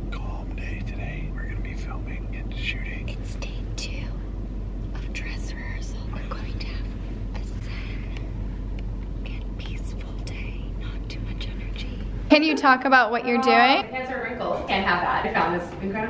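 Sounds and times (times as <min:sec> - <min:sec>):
car cabin rumble: 0:00.0 - 0:12.3
soft whispered speech: 0:00.1 - 0:04.2, 0:05.0 - 0:08.2, 0:09.2 - 0:12.2.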